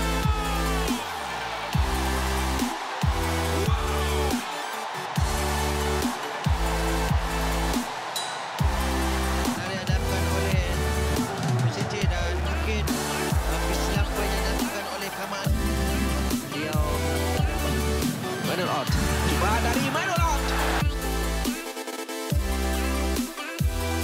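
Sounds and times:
electronic dance music: 0:00.0 - 0:24.0.

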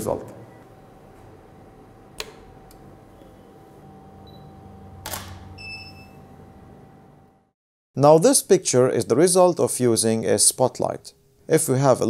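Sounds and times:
faint high beeps: 0:05.6 - 0:06.2.

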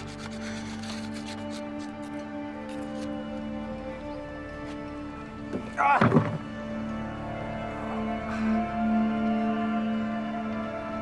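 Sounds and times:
knife scraping wood: 0:00.0 - 0:03.4
soft background music: 0:00.0 - 0:11.0.

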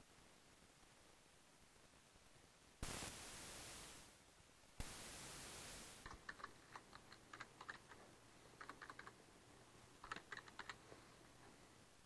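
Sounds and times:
steady hiss: 0:00.0 - 0:12.0
typing on computer keyboard: 0:06.1 - 0:08.0, 0:08.6 - 0:09.2, 0:10.0 - 0:10.8.

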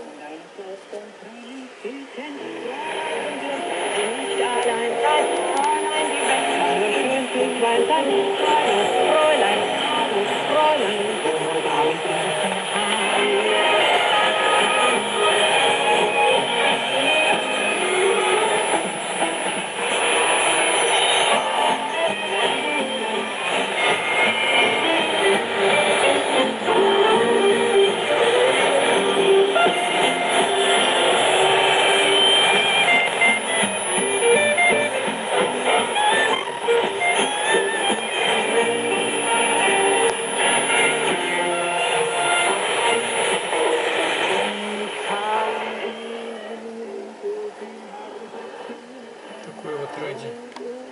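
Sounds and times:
song with singing and guitar on radio: 0:00.0 - 0:50.9.

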